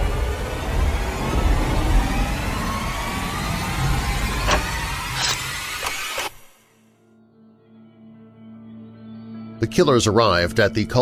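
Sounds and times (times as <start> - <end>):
deep rumble: 0.0 - 5.7
slowly rising tones: 0.0 - 6.9.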